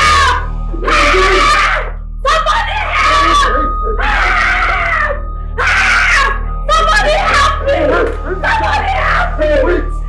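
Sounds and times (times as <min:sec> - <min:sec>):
woman screaming for help: 0:00.0 - 0:09.9.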